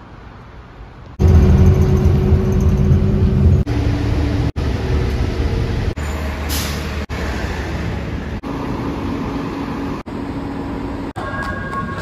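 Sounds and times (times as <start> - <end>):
buses running: 0.0 - 12.0
air brake hiss: 6.5 - 6.9.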